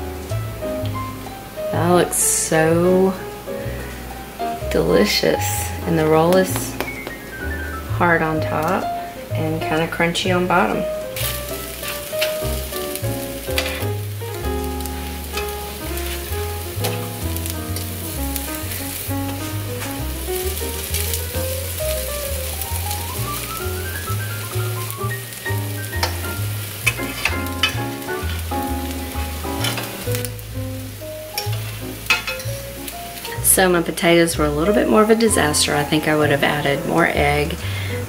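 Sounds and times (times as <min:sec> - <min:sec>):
pancakes sizzling in frying pan: 0:00.0 - 0:05.2, 0:08.6 - 0:38.0
background music with bass line: 0:00.0 - 0:37.7
metal spatula scraping pan: 0:13.5 - 0:14.0, 0:15.0 - 0:17.9, 0:26.0 - 0:28.4, 0:31.3 - 0:32.6.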